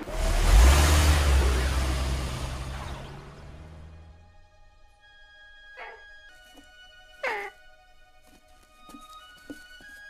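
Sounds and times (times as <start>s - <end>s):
soft background music: 2.9s - 10.0s
cartoon bird squawk: 5.8s - 6.1s, 7.2s - 7.6s.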